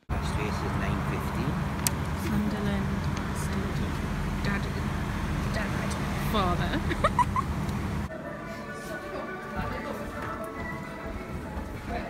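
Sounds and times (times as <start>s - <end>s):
people talking: 0.0s - 7.4s, 8.0s - 12.0s
car engine rumbling: 0.0s - 8.1s.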